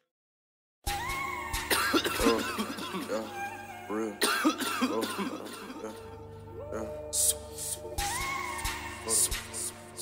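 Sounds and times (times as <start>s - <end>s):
person coughing: 1.7s - 3.3s, 4.2s - 6.1s
rap beat with bass and synth: 6.7s - 10.0s
rapper ad-lib: 6.7s - 10.0s.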